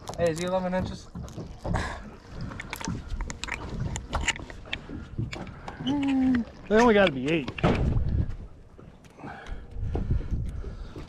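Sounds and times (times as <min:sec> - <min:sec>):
wind on microphone: 0:07.6 - 0:08.6, 0:09.7 - 0:11.0.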